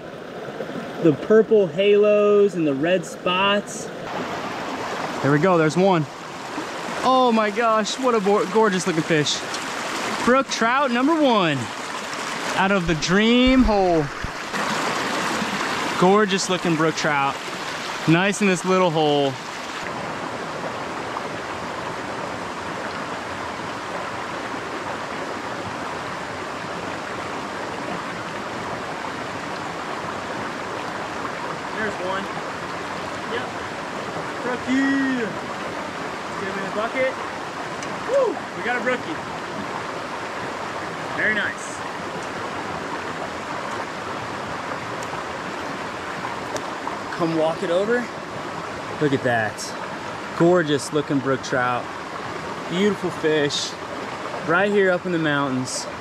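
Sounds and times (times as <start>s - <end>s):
brook running over rocks: 0.0s - 56.0s.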